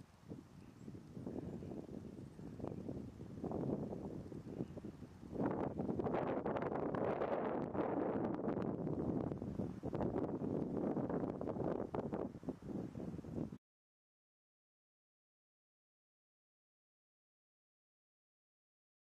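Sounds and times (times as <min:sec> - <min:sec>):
wind buffeting microphone: 0:00.0 - 0:13.6.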